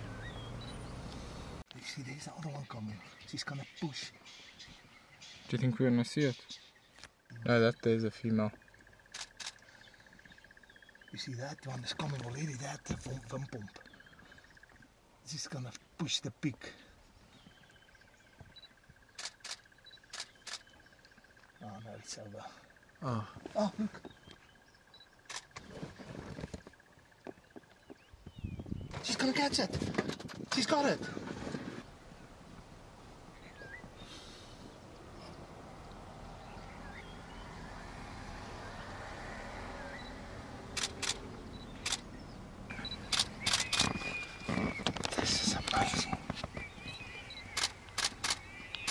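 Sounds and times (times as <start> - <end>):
camera shutters clicking: 19.2 - 20.7, 40.7 - 41.2, 41.8 - 42.1, 43.1 - 44.2, 47.5 - 48.9.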